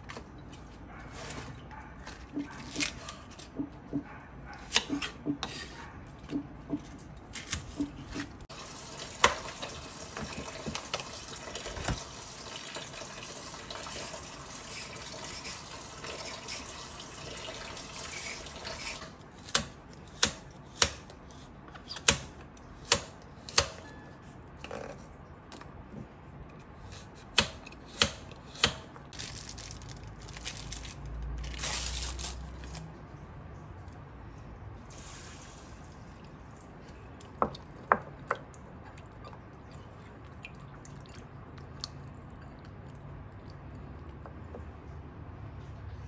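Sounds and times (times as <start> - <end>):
knife chopping on wooden board: 19.5 - 21.1.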